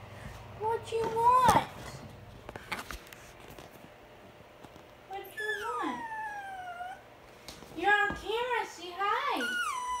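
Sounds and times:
puppy whining: 5.1 - 7.1, 9.2 - 10.0.

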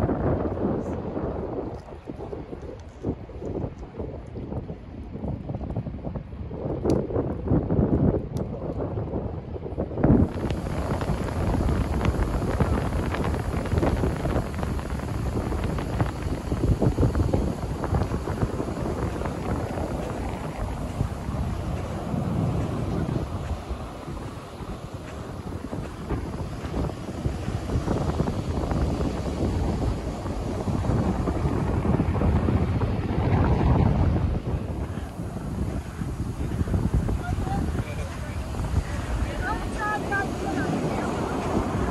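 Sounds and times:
wind buffeting microphone: 0.0 - 41.9
ocean surf on beach: 9.6 - 41.9.

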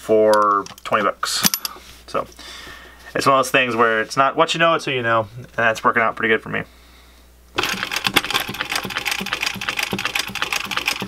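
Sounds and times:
sewing machine stitching: 7.6 - 11.0.

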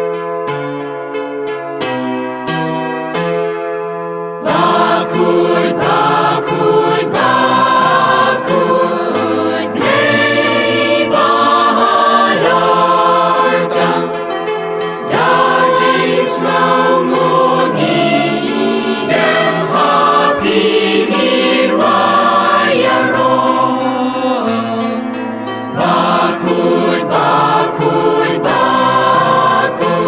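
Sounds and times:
voices singing slow chant: 4.4 - 14.2, 15.0 - 25.1, 25.7 - 30.0.

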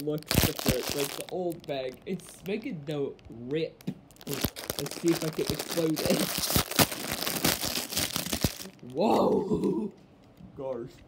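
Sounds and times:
plastic bag crinkling and tearing: 0.0 - 3.4, 4.1 - 9.0.

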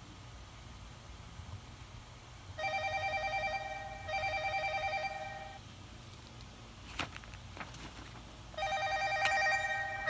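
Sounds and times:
electronic telephone ringing: 2.6 - 5.6, 8.6 - 10.0.

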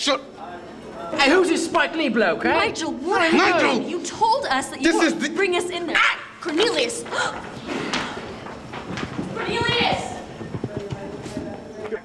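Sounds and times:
quick irregular knocks and clatter: 7.8 - 12.0.

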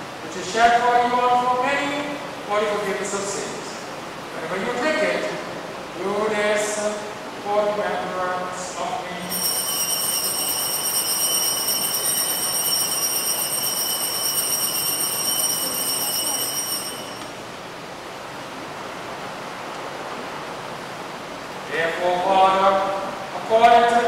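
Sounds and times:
altar bells ringing: 9.3 - 17.5.

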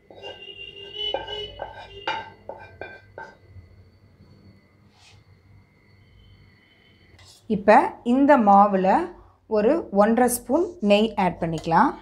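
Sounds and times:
metal spoon tapping steel bowl: 0.0 - 3.4, 11.4 - 11.9.

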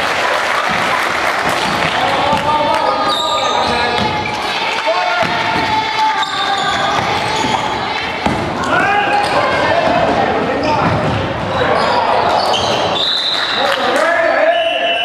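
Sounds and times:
voices calling out: 0.6 - 15.0
basketball bouncing on wooden floor: 3.6 - 4.3, 5.2 - 5.9, 6.6 - 11.6.

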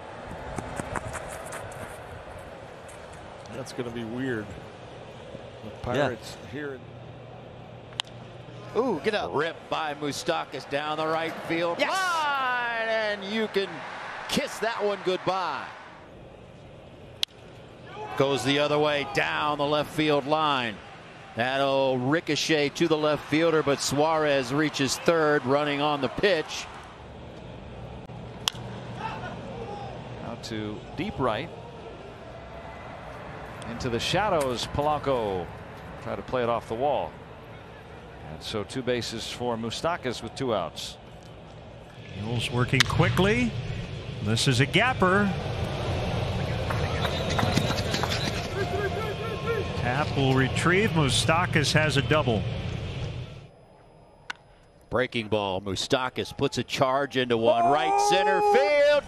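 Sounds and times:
ballpark background noise: 0.0 - 59.0.

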